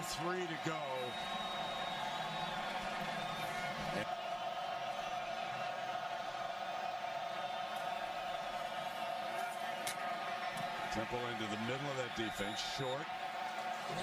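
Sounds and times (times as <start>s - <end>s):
stadium crowd cheering and chanting: 0.0s - 14.0s.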